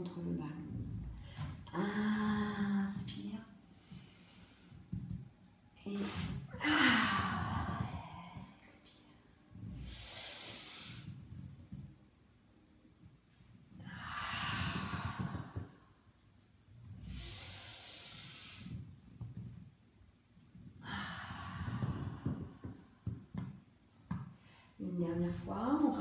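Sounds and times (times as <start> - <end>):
woman speaking: 0.0 - 0.9, 1.7 - 3.6, 24.8 - 26.0
woman breathing deeply: 3.6 - 11.9, 13.7 - 19.5, 20.8 - 23.5.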